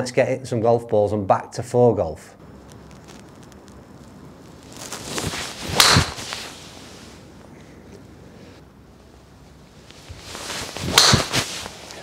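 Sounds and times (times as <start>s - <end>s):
golf ball impact crack: 4.6s - 6.5s, 10.2s - 11.7s
golf club swing rush: 5.0s - 7.2s, 10.1s - 12.0s.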